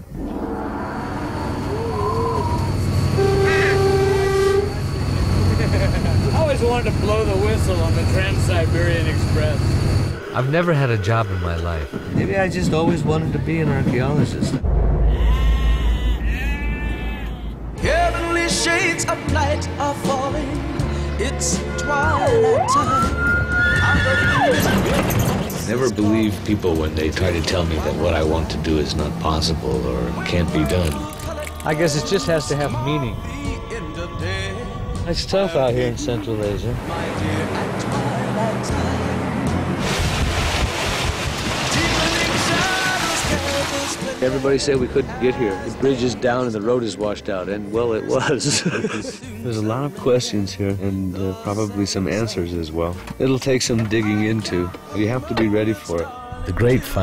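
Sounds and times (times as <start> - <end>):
steady low rumble: 4.5 - 22.7
loud rushing noise: 14.6 - 20.5, 36.6 - 44.8.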